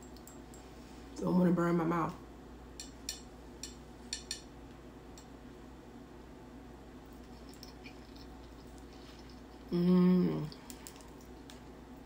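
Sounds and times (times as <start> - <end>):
low room hum: 0.0 - 12.0
mouth clicks while eating: 7.2 - 9.7.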